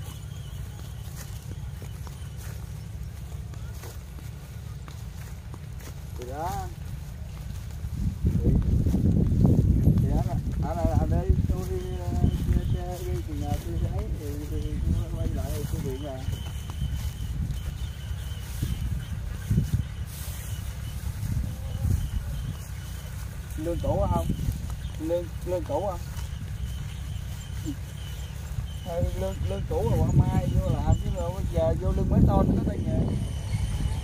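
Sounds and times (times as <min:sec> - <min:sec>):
footsteps in stubble: 0:00.0 - 0:34.0
wind rumble: 0:00.0 - 0:34.0
people talking: 0:06.0 - 0:07.6, 0:09.8 - 0:16.6, 0:21.3 - 0:26.4, 0:27.5 - 0:28.0, 0:28.6 - 0:34.0.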